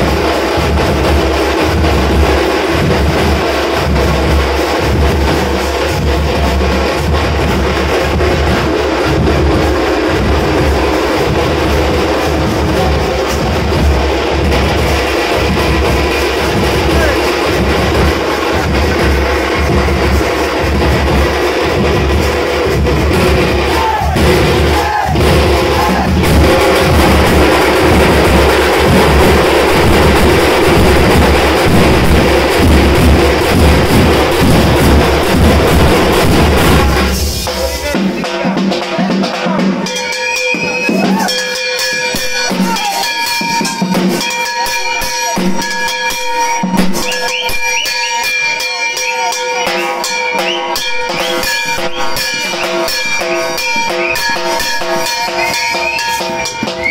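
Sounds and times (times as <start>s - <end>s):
frame drums beaten with sticks: 0.0s - 56.9s.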